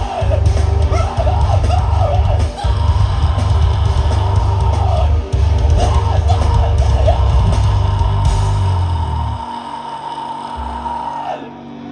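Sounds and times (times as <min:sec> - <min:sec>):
heavy metal band: 0:00.0 - 0:11.9.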